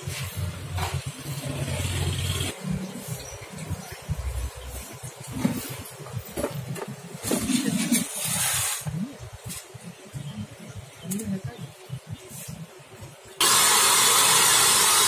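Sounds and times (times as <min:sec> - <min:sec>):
knocks and handling noise: 0:04.9 - 0:08.2.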